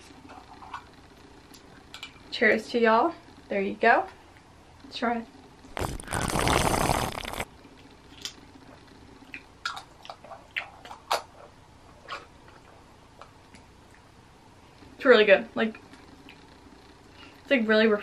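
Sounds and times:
drinking from a bottle: 5.8 - 7.5
mouth smacks: 5.8 - 7.5.

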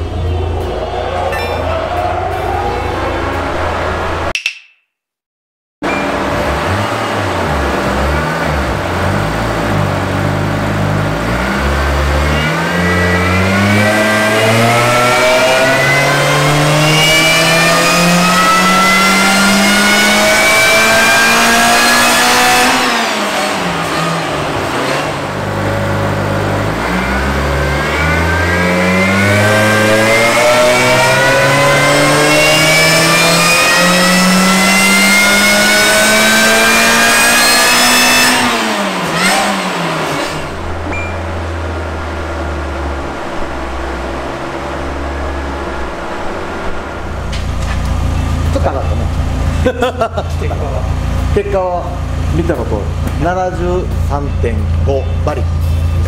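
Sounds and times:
supercharged engine revving under load: 5.9 - 56.0.

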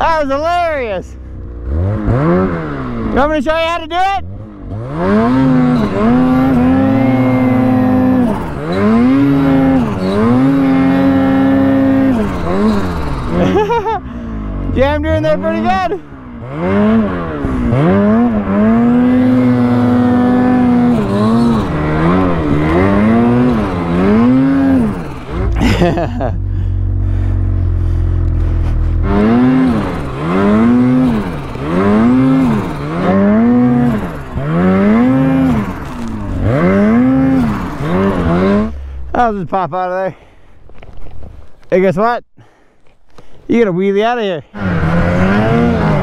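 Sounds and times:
snowmobile engine revving: 0.0 - 40.0, 44.0 - 46.0.

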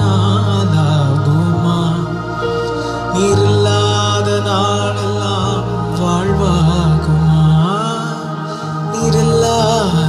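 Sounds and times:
man singing worship song: 0.0 - 10.0
sustained low accompaniment chords: 0.0 - 10.0.

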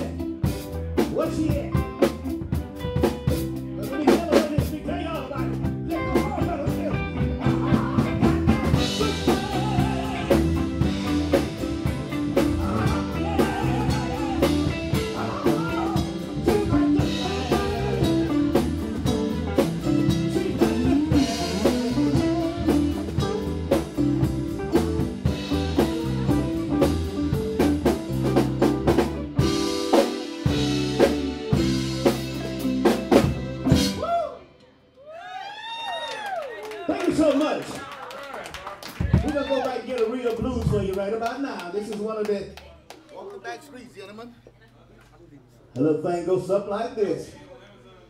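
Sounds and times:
drum kit steady beat: 0.0 - 34.3
live band playing: 0.0 - 34.8.

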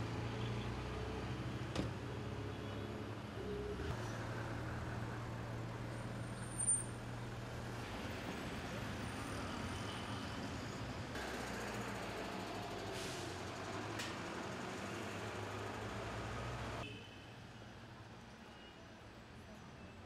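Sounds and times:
street traffic hum: 0.0 - 20.0.

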